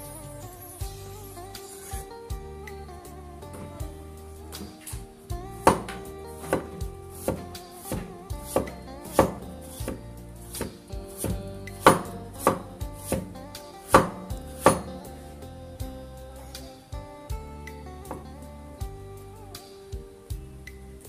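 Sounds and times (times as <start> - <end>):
background music: 0.0 - 21.0
cleaver chopping on wooden board: 5.6 - 13.3, 13.9 - 15.0.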